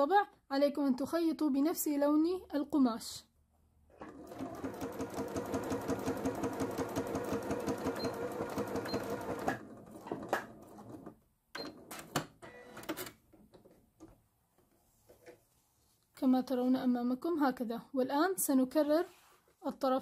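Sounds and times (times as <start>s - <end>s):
electric sewing machine stitching: 4.0s - 11.0s.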